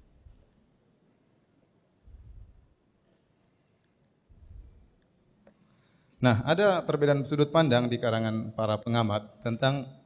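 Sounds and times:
marker writing on whiteboard: 0.0 - 6.0.

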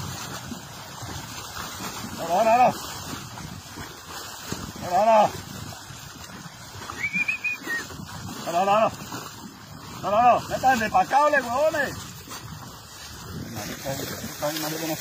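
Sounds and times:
men shouting herding calls: 2.0 - 2.9, 4.8 - 5.4, 6.9 - 9.0, 9.8 - 12.0.

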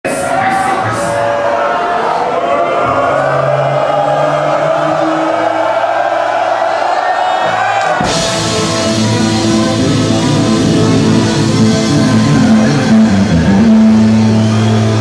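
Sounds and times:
crowd cheering: 0.0 - 15.0
live band playing: 7.9 - 15.0.

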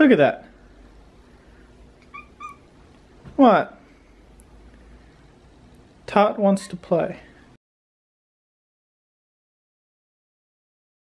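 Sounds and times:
cat chirping: 2.0 - 2.8.

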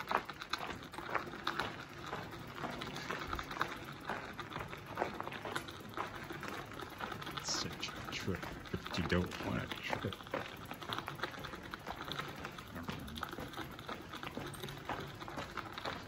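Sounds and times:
footsteps crunching on gravel: 0.0 - 16.0.

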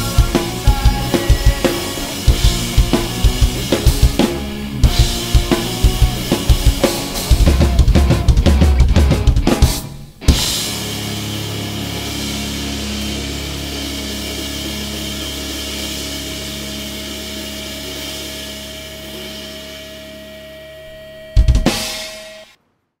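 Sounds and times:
cymbals ringing: 0.0 - 7.5, 10.3 - 22.5
loud drum and cymbal hits: 0.0 - 20.2, 21.3 - 22.5
final chord held: 10.3 - 22.2.

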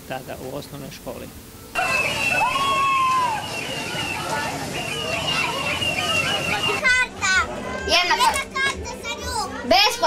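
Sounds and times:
children shouting: 1.8 - 9.6
funfair noise: 1.8 - 10.0.

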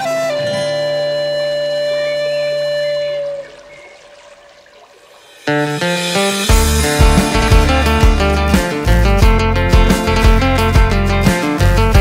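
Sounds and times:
flute holding long note: 0.0 - 4.0.

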